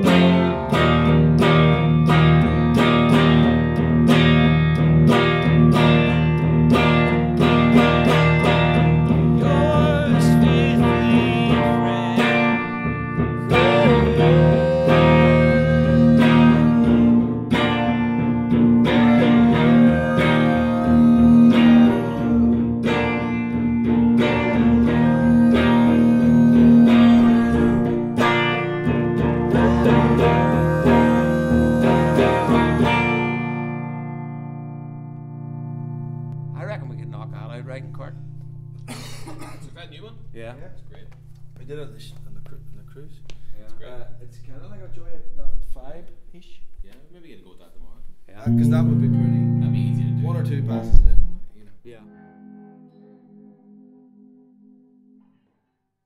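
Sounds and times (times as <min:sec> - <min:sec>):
guitar strumming with melody: 0:00.0 - 0:46.3, 0:48.4 - 0:55.7.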